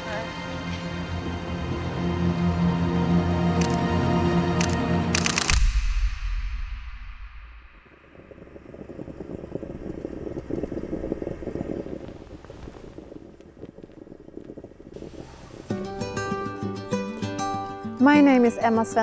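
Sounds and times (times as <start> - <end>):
deep musical boom: 5.6 - 8.3
moka pot gurgling and sputtering: 7.8 - 16.1
plucked string music: 15.7 - 19.0.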